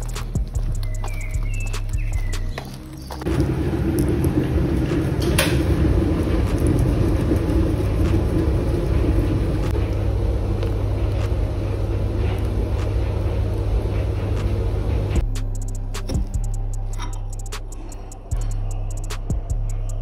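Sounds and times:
low mechanical rumble: 0:00.0 - 0:20.0.

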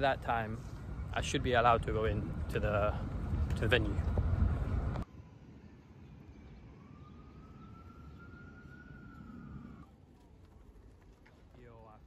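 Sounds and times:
street ambience: 0:00.0 - 0:12.0
distant siren wailing: 0:03.9 - 0:11.1.

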